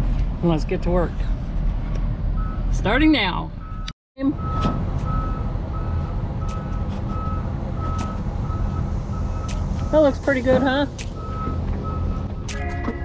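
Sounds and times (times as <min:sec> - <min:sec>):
backup alarm beeping: 0:03.6 - 0:13.0.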